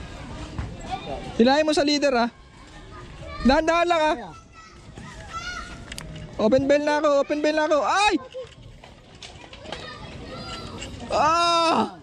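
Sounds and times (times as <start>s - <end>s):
faint outdoor background noise: 0.0s - 12.0s
man crying out: 11.1s - 12.0s.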